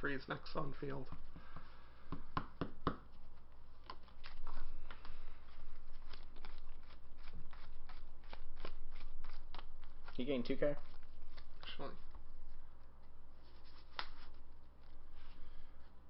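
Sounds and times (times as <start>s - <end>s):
trading cards shuffling: 3.1s - 15.4s.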